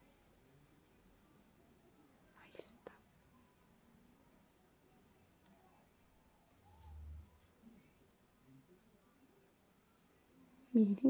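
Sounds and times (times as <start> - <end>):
faint whisper or breath: 0.1 - 3.8.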